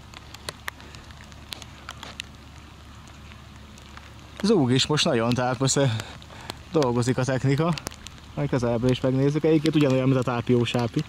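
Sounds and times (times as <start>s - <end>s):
low equipment hum: 0.0s - 11.0s
sharp ticks: 5.1s - 11.0s.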